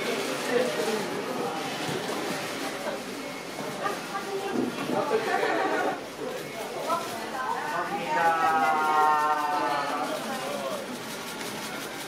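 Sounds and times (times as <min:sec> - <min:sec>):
chatter of several voices: 0:00.0 - 0:11.7.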